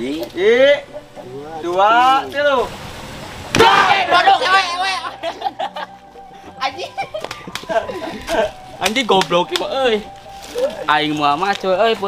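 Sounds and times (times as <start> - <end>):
cannon boom: 3.5 - 4.1.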